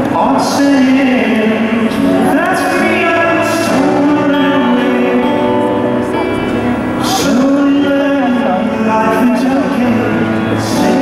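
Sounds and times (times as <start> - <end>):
acoustic guitar: 0.0 - 11.0
man singing long held notes: 0.0 - 11.0
piano accompaniment: 0.0 - 11.0.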